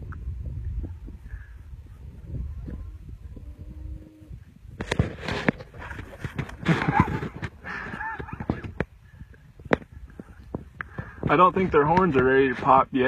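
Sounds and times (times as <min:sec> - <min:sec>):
wind rumble on microphone: 0:00.0 - 0:13.0
hooves knocking on ground: 0:04.3 - 0:12.8
deer scuffling: 0:04.7 - 0:12.8.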